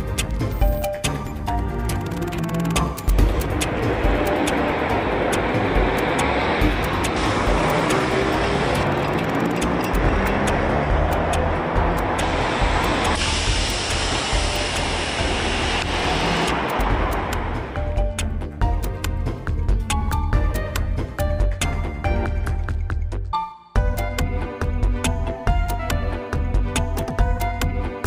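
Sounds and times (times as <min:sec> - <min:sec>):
street traffic: 0:00.0 - 0:22.8.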